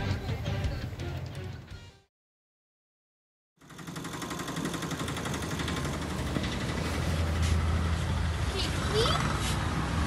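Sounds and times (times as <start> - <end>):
auto-rickshaw engine pulsing: 3.6 - 10.0.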